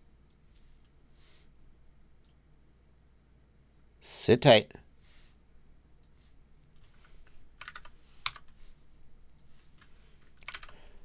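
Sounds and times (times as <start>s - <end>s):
typing on computer keyboard: 7.6s - 8.6s, 9.8s - 10.8s.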